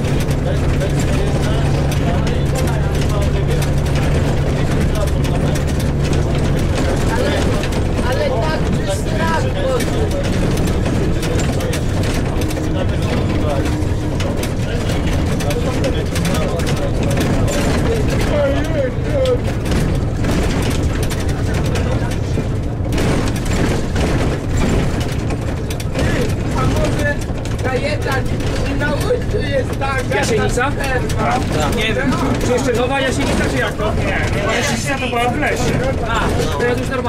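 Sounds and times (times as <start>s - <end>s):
diesel bus engine droning: 0.0s - 37.0s
rattling and clicking of bus body: 0.0s - 37.0s
road noise: 0.0s - 37.0s.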